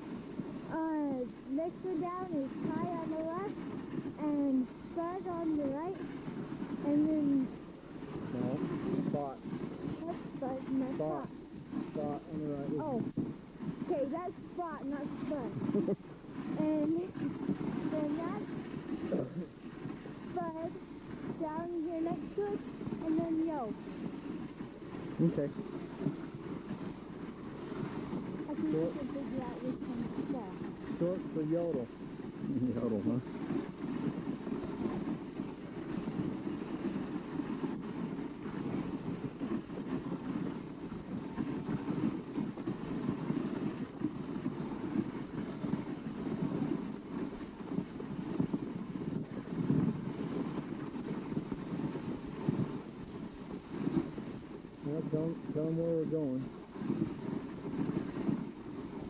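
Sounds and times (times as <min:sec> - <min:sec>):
sled runners hissing on snow: 0:00.0 - 0:59.0
faint voices: 0:08.2 - 0:13.2, 0:20.3 - 0:23.8, 0:28.4 - 0:33.3.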